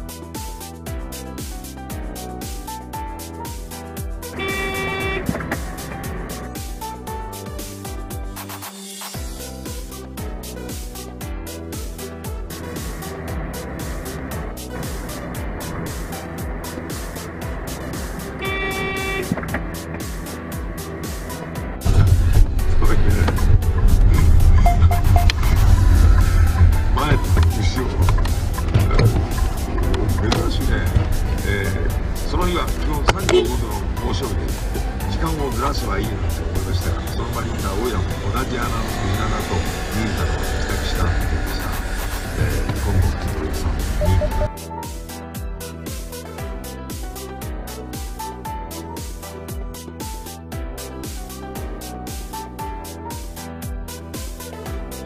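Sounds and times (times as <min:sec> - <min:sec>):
background music: 0:00.0 - 0:55.0
car horn blast: 0:04.3 - 0:06.4, 0:17.8 - 0:20.4, 0:24.5 - 0:29.9, 0:33.0 - 0:34.2, 0:42.5 - 0:44.5
vehicle rumble: 0:04.3 - 0:07.0, 0:12.5 - 0:44.5.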